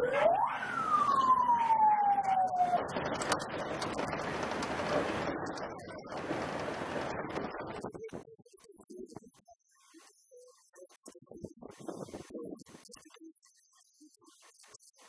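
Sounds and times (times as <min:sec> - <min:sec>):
emergency siren winding down: 0:00.0 - 0:07.8
outdoor noise: 0:00.0 - 0:15.0.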